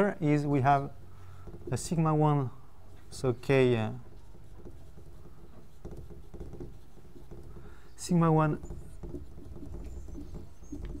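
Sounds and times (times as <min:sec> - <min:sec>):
marker squeaking on whiteboard: 0:00.8 - 0:11.0.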